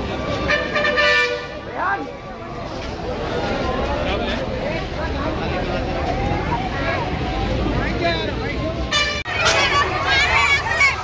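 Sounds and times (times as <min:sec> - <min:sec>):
crowd chatter: 0:00.0 - 0:11.0
vehicle horn honking: 0:00.5 - 0:01.6, 0:08.9 - 0:09.3.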